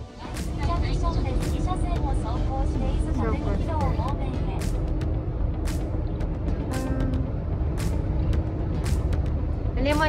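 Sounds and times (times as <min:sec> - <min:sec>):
person talking: 0:06.7 - 0:07.3.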